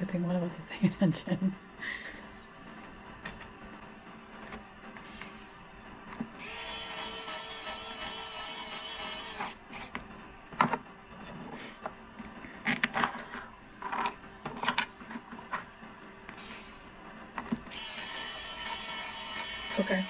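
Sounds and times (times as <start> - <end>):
electric screwdriver whine: 6.4 - 9.6, 17.7 - 20.0.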